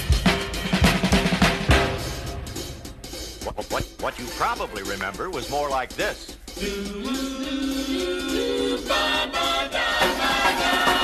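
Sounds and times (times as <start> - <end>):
drum kit swing beat: 0.0 - 11.0.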